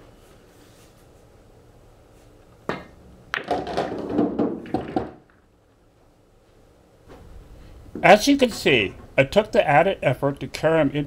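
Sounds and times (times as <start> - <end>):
pool balls clacking: 2.7 - 5.8
balls rolling through return channels: 3.3 - 5.8.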